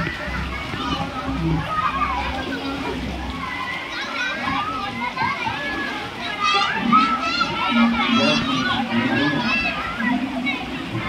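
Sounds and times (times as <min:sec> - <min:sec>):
children calling and shouting: 0:00.0 - 0:11.0.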